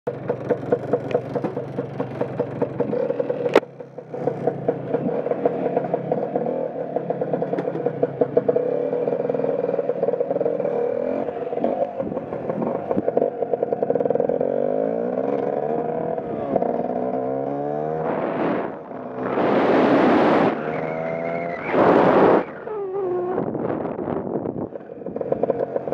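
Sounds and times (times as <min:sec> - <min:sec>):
scooter engine idling with pops: 0:00.1 - 0:17.3, 0:22.5 - 0:25.9
scooter engine revving: 0:00.1 - 0:25.9.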